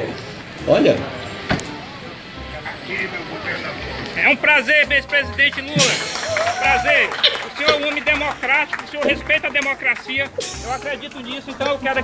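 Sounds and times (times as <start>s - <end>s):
faint voices: 0.0s - 12.0s
vehicle background noise: 0.0s - 12.0s
sharp knock: 5.8s - 6.5s.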